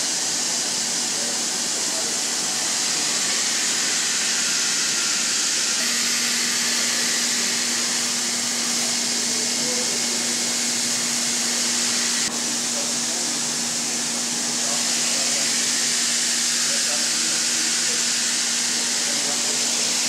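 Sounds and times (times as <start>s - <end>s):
machinery hissing: 0.0s - 20.0s.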